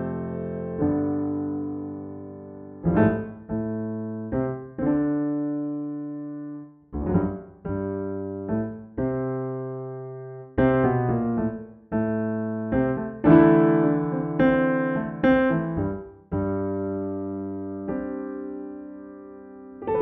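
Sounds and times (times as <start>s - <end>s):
slow piano chords: 0.0s - 20.0s.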